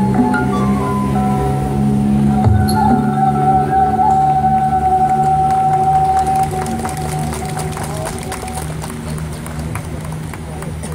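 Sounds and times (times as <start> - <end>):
long held high note: 0.0 - 6.9
steady low notes: 0.0 - 10.9.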